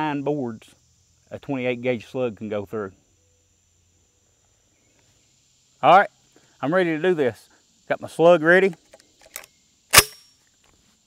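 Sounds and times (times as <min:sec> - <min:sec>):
high-pitched insect drone: 0:00.0 - 0:11.0
man speaking: 0:01.3 - 0:03.0, 0:05.8 - 0:08.8.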